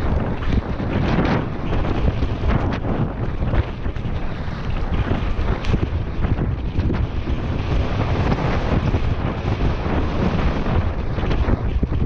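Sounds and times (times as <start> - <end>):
tyres rumbling on dirt trail: 0.0 - 12.0
wind buffeting microphone: 0.0 - 12.0.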